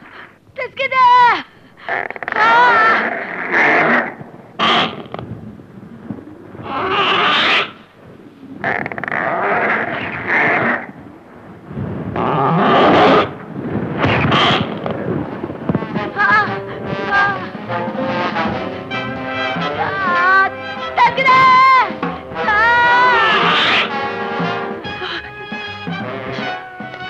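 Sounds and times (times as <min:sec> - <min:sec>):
woman screaming: 0:02.4 - 0:03.1, 0:19.8 - 0:23.9.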